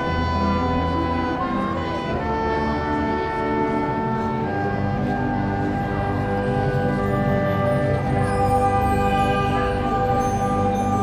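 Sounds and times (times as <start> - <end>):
wind band playing held chords: 0.0 - 11.0.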